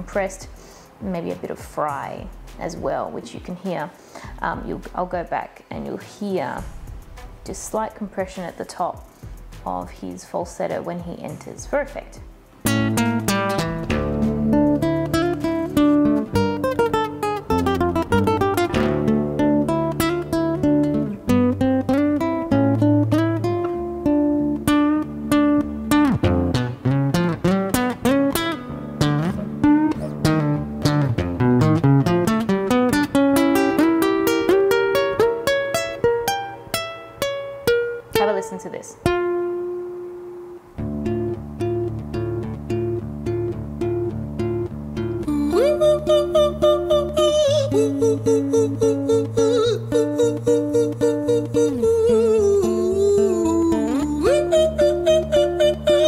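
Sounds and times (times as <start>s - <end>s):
fingerpicked acoustic guitar: 11.8s - 56.0s
man singing in falsetto: 45.2s - 56.0s.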